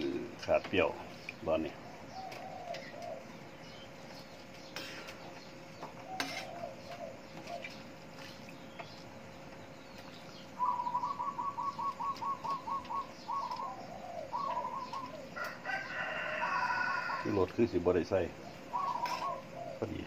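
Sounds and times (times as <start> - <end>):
bird chirping: 0.0 - 20.0
faint steady hum: 0.0 - 20.0
rooster crowing: 15.1 - 17.5.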